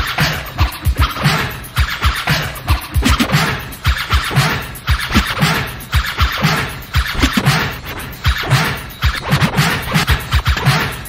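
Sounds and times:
drum beat with heavy kicks: 0.0s - 11.0s
vinyl record scratching: 0.0s - 11.0s.

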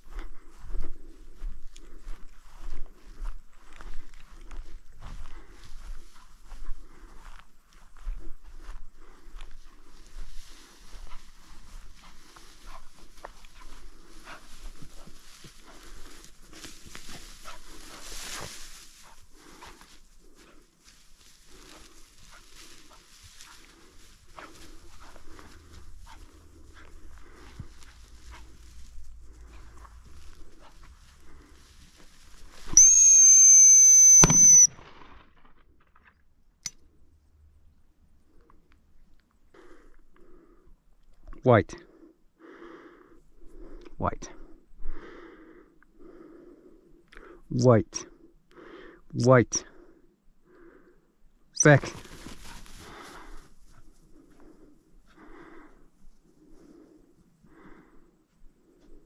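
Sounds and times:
footsteps through dry grass: 0.0s - 32.8s, 51.7s - 59.0s
high-pitched whistle blast: 32.8s - 34.7s.

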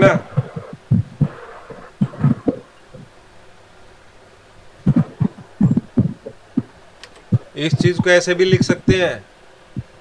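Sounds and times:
dull low thumps: 0.0s - 3.2s, 4.8s - 8.8s
faint background hum: 0.0s - 10.0s.

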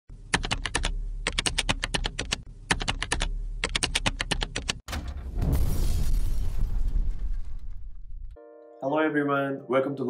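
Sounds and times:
computer keyboard typing: 0.3s - 4.8s.

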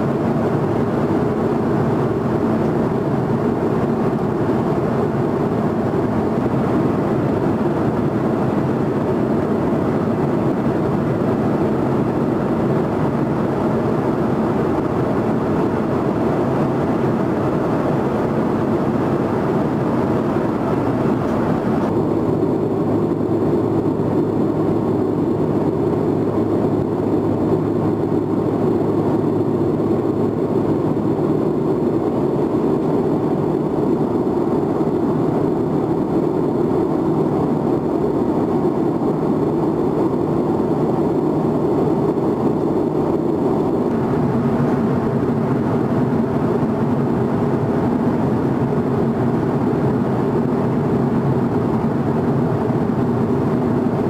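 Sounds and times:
jet engine and airflow rumble: 0.0s - 54.0s.

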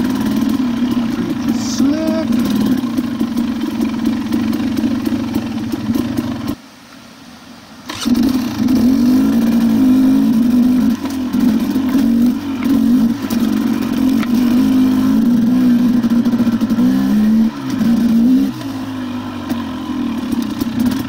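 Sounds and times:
dirt bike engine revving: 0.0s - 6.6s, 7.9s - 21.0s.

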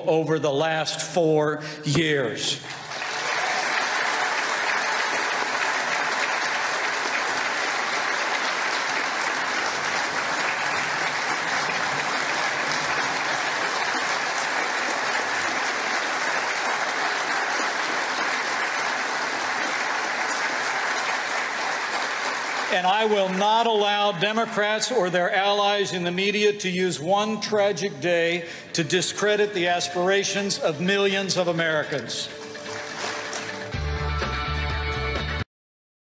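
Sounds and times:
person speaking: 0.0s - 2.7s
audience applauding: 2.6s - 24.2s, 31.7s - 34.4s.

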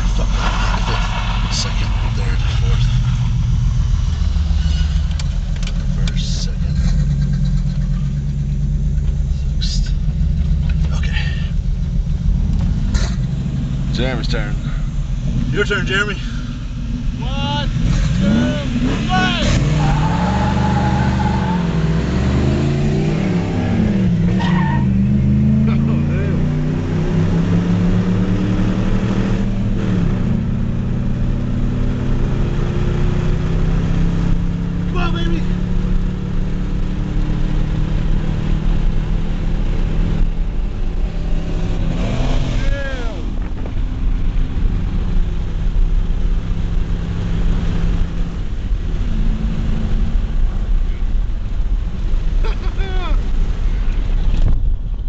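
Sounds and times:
car engine accelerating: 0.0s - 55.0s.

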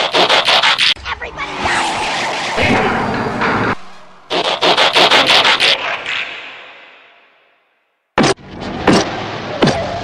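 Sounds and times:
loud noisy crash: 0.7s - 6.6s.

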